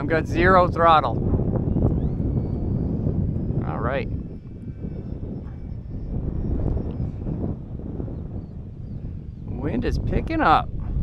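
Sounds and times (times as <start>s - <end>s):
high whine of model plane: 0.0s - 11.0s
wind buffeting microphone: 0.0s - 11.0s.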